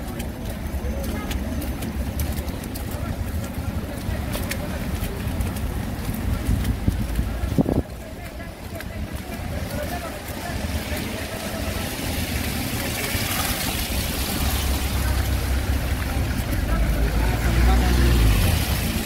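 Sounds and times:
background voices: 0.0s - 19.0s
vehicle engines running: 0.0s - 19.0s.

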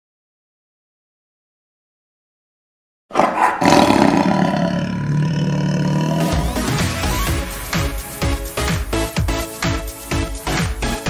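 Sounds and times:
roar-like sound effect: 3.1s - 6.9s
electronic music with steady beat: 6.3s - 11.0s.

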